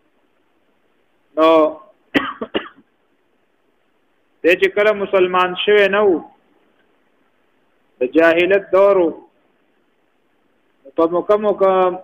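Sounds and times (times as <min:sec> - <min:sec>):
man speaking: 0:01.4 - 0:02.0, 0:04.4 - 0:06.4, 0:08.0 - 0:09.3, 0:10.9 - 0:12.0
man coughing: 0:02.1 - 0:02.9.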